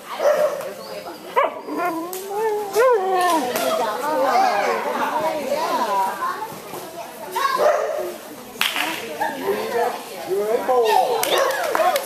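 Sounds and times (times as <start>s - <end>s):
dog barking: 0.1s - 0.7s, 7.6s - 8.0s
people calling out: 1.6s - 5.9s.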